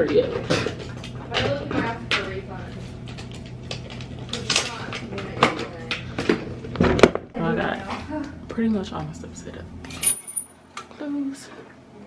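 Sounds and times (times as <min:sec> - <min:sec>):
steady low hum: 0:00.3 - 0:12.0.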